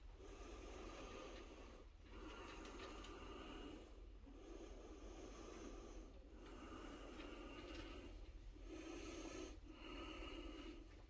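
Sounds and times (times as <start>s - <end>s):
person breathing: 0.1s - 11.0s.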